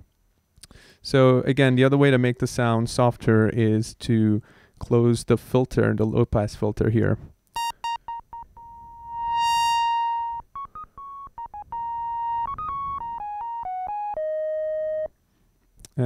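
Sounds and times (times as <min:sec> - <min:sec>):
square-wave synthesizer notes: 0:07.6 - 0:15.1.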